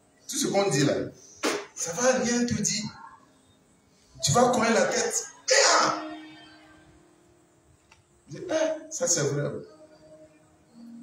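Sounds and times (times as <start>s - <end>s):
faint steady hum: 0.0s - 11.0s
man exclaiming through microphone: 4.8s - 6.0s.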